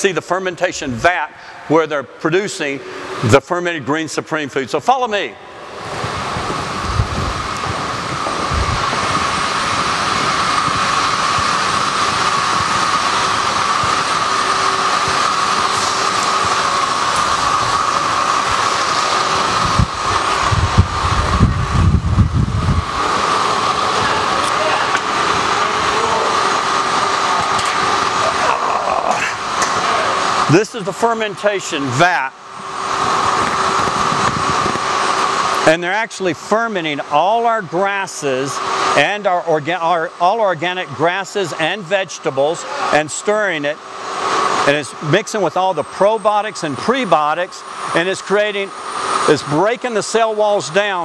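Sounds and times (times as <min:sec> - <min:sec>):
machinery hiss and whine: 0:00.0 - 0:51.0.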